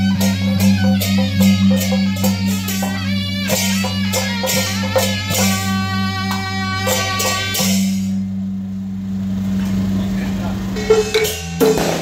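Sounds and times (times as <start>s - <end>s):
engine humming: 0.0s - 12.0s.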